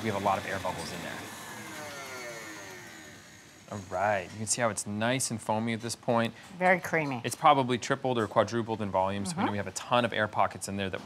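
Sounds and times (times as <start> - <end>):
stand mixer motor whine: 0.0 - 4.3.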